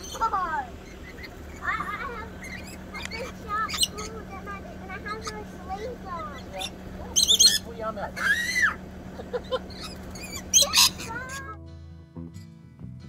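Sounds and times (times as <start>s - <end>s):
lorikeets screeching: 0.0s - 11.6s
acoustic guitar music: 10.0s - 13.0s.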